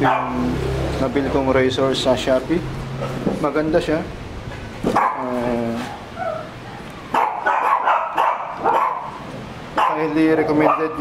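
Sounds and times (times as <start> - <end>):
small dog barking: 0.0 - 0.5, 4.9 - 9.2, 9.8 - 11.0
dog whining: 5.0 - 9.2.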